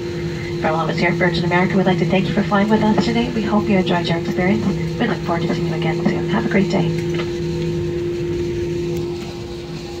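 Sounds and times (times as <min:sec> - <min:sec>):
jet engines idle hum: 0:00.0 - 0:10.0
low cabin rumble: 0:00.0 - 0:10.0.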